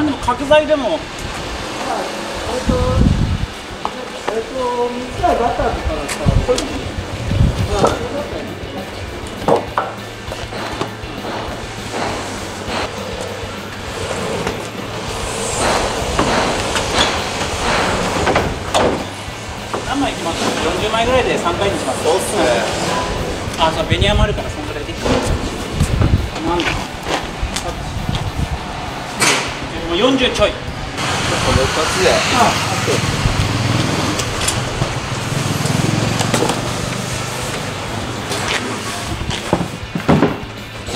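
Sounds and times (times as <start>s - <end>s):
people talking: 0.0s - 1.1s, 1.8s - 3.2s, 3.8s - 9.1s, 19.8s - 25.4s, 26.2s - 26.9s, 27.5s - 28.1s, 29.6s - 33.4s
indistinct voices: 0.0s - 39.5s
truck engine idling: 6.8s - 40.9s
boards knocking and scraping: 15.6s - 19.1s, 38.3s - 40.6s
sharp knocks: 15.6s - 19.9s.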